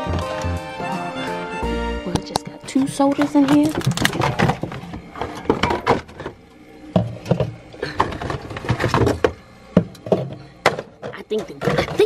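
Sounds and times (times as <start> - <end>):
cans knocking and clinking: 2.2 - 12.0.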